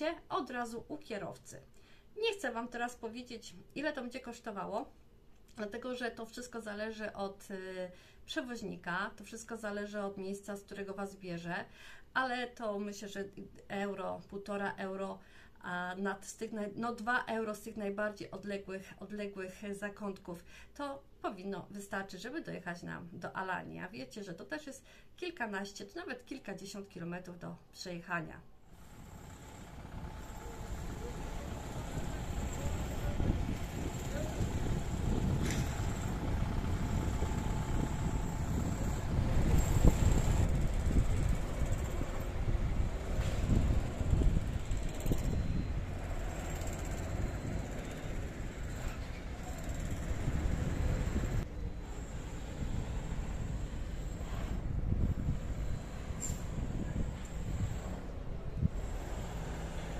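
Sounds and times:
low rumble of traffic: 28.6s - 59.9s
bus pulling away: 28.9s - 53.9s
bus engines running: 28.9s - 59.9s.

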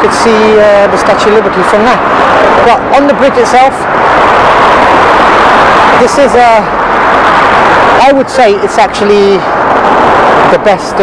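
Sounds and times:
road traffic roar: 0.0s - 11.0s.

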